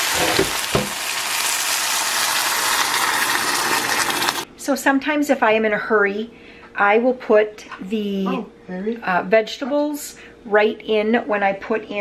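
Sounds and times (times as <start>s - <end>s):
broth pouring into skillet: 0.0s - 4.4s
liquid sizzling in hot pan: 0.0s - 4.4s.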